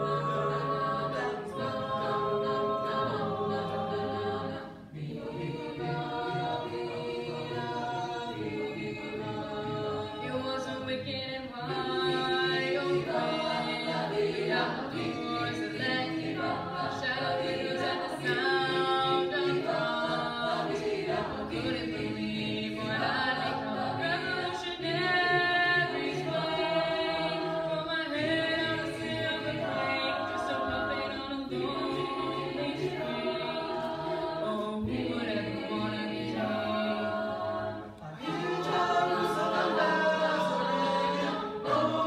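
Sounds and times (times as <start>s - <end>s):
choir singing unaccompanied: 0.0s - 42.0s.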